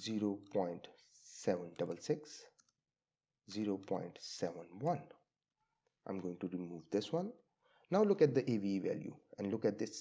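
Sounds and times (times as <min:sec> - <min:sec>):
man speaking: 0:00.0 - 0:02.6, 0:03.5 - 0:05.2, 0:06.1 - 0:10.0.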